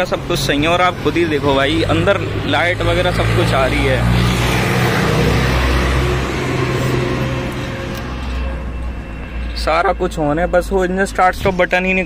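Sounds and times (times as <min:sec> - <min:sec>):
road traffic: 0:00.0 - 0:12.0
vehicle engine idling: 0:04.7 - 0:10.8.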